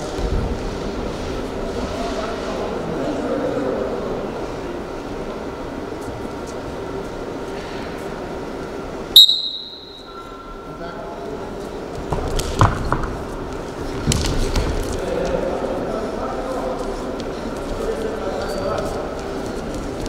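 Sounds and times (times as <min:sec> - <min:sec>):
referee's whistle: 0:09.2 - 0:10.2.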